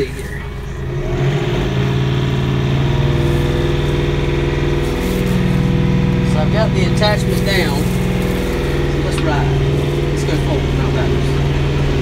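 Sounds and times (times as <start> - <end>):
tractor diesel engine running: 0.0 - 12.0.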